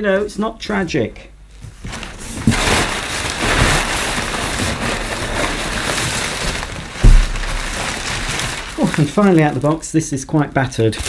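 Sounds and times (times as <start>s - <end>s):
packing paper rustling: 1.6s - 11.0s
dull thump: 6.5s - 8.5s.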